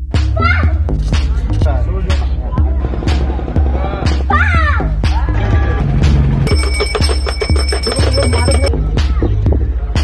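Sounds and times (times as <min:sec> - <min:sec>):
rapidly pulsing bell-like ringing: 0:06.4 - 0:08.7.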